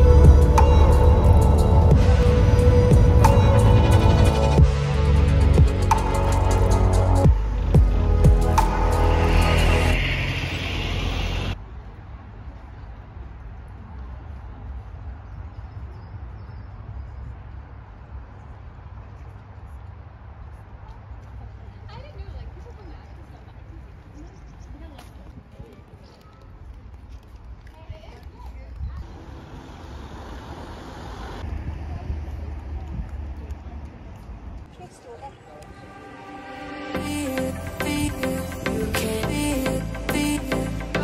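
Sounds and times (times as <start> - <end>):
road vehicle passing: 0.0 - 12.6, 29.0 - 41.0
steady low rumble: 0.0 - 13.6.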